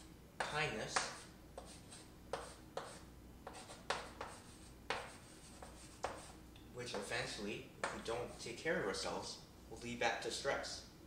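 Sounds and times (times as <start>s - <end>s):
chalk scratching on chalkboard: 0.4s - 8.5s.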